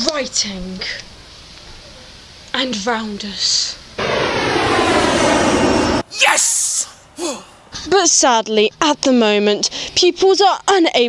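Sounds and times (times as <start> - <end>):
loud rushing roar: 4.0 - 6.9.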